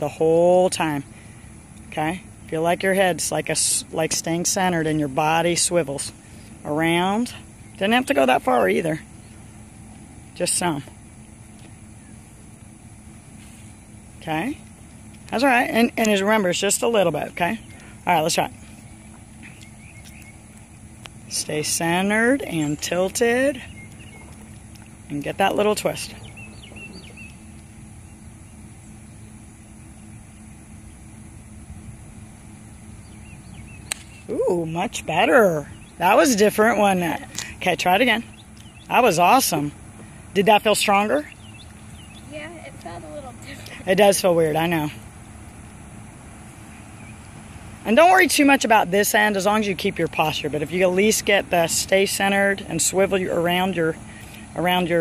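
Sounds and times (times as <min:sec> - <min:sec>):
steady low rumble: 0:00.0 - 0:55.0
faint bird chirps: 0:17.5 - 0:31.6, 0:41.0 - 0:43.9.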